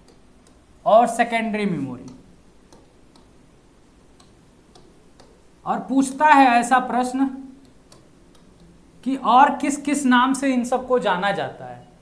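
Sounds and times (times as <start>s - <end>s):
clicks and taps of writing: 0.0s - 0.7s, 2.0s - 3.4s, 4.2s - 5.4s, 7.6s - 8.8s
man talking: 0.8s - 2.2s, 5.6s - 7.5s, 9.0s - 11.9s.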